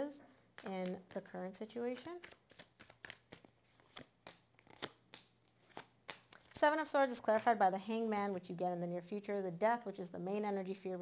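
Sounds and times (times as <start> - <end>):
cards flicking and tapping: 1.9 - 6.5.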